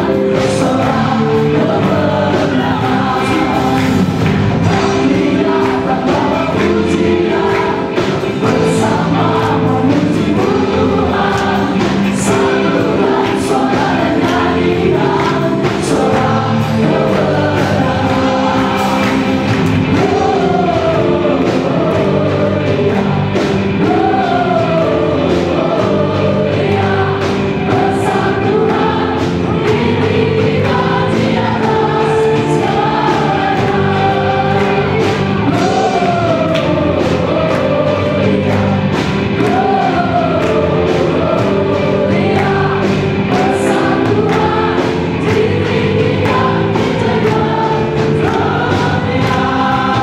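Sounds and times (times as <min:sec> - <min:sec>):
electric guitar: 0:00.0 - 0:50.0
group of singers: 0:00.0 - 0:50.0
keyboard: 0:00.0 - 0:50.0.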